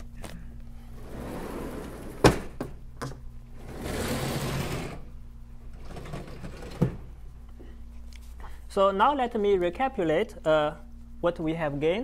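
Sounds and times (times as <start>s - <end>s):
sliding panel rolling and scraping: 1.0s - 2.6s, 3.6s - 5.1s.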